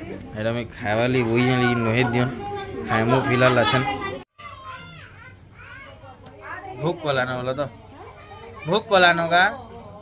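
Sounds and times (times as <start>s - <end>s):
children chattering: 1.1s - 10.0s.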